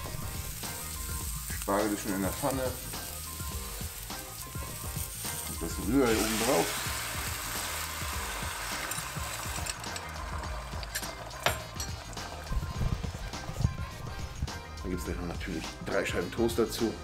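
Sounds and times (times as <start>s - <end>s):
egg sizzling in a frying pan: 0.0s - 13.7s
background music: 0.0s - 17.0s.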